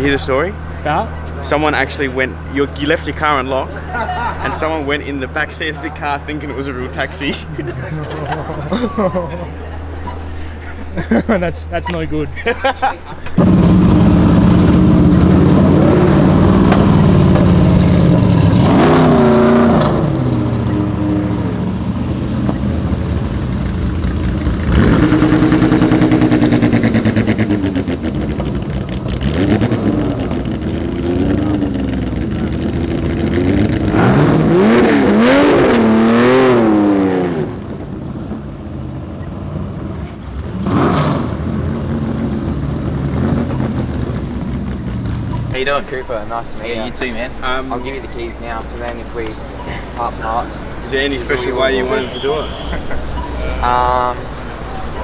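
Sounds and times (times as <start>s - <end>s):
race car engines revving: 13.2s - 55.0s.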